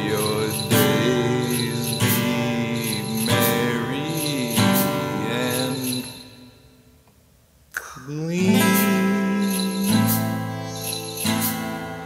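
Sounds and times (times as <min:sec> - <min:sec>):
acoustic guitar strumming: 0:00.0 - 0:07.0, 0:08.3 - 0:12.0.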